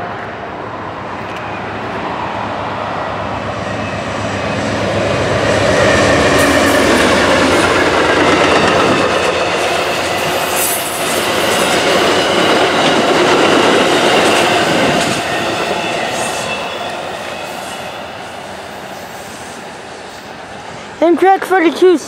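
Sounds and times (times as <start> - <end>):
train cars rolling past: 0.0 - 22.0.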